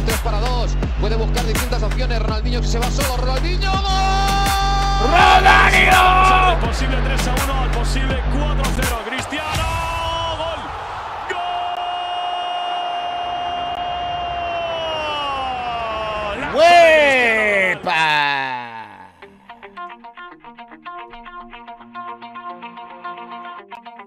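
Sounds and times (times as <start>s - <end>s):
light background music: 0.1s - 9.2s
commentator shouting: 3.6s - 10.6s, 14.9s - 19.3s
crowd noise: 4.0s - 19.2s.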